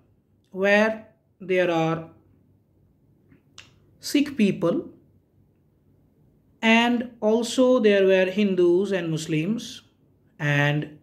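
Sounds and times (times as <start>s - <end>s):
mouth click: 3.3s - 3.8s.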